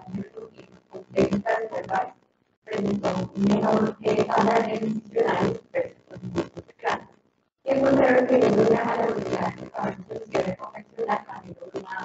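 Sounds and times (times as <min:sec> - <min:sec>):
garbled distorted voice: 0:00.0 - 0:02.1, 0:02.7 - 0:07.0, 0:07.7 - 0:12.0.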